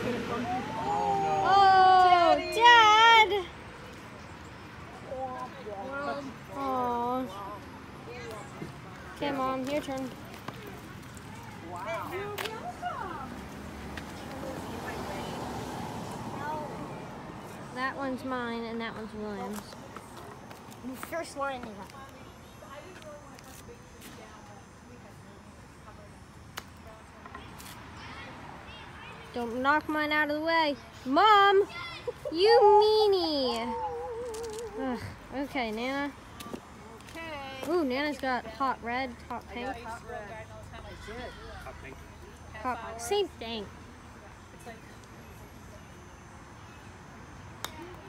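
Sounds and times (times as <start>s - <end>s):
outdoor background noise: 0.0s - 48.0s.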